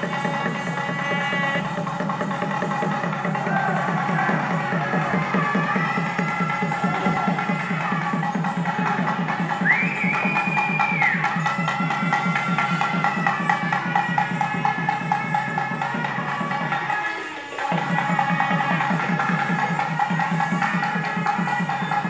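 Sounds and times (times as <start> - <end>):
fast steady drumbeat: 0.0 - 22.0
reed pipe melody: 0.0 - 22.0.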